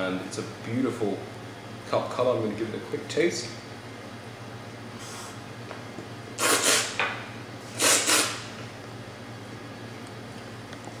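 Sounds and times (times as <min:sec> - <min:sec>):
loud tea slurps: 0:06.4 - 0:07.0, 0:07.8 - 0:08.4.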